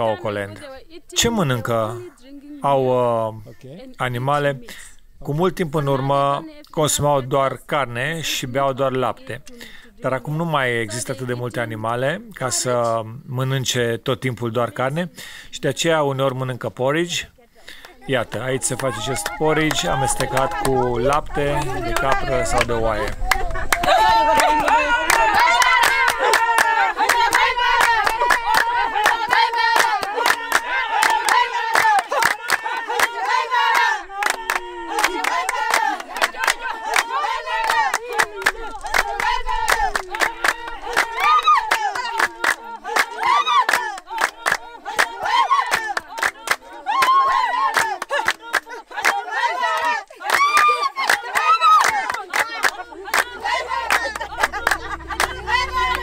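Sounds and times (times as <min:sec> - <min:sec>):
hands clapping in rhythm: 0:17.7 - 0:56.0
women singing together: 0:17.9 - 0:56.0.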